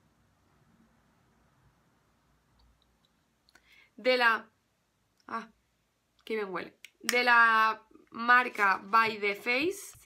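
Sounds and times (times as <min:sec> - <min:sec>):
short breath: 0:03.6 - 0:04.0
person speaking: 0:06.2 - 0:10.0.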